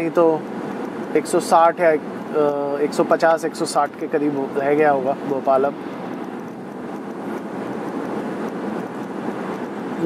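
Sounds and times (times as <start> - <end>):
road and wind noise in car: 0.0 - 10.0.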